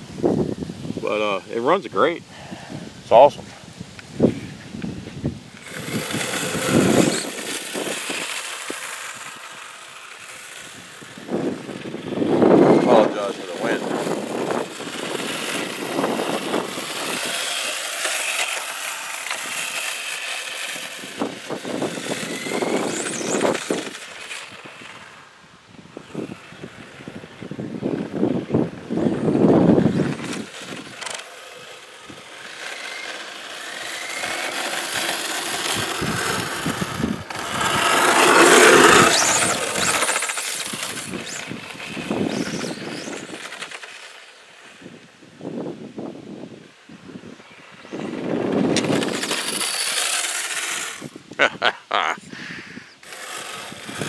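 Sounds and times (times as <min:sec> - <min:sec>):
tyres on asphalt: 0:00.0 - 0:54.0
electric motor whining: 0:04.2 - 0:45.7, 0:47.6 - 0:51.4, 0:52.9 - 0:54.0.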